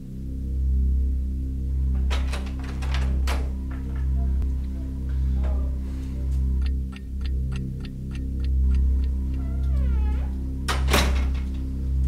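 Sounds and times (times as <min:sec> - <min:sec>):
loud steady low drone: 0:00.0 - 0:12.0
clock ticking: 0:06.5 - 0:09.4.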